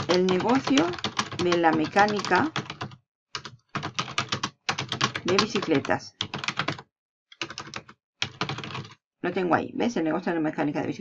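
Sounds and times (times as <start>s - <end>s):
typing on keyboard: 0.0s - 9.0s.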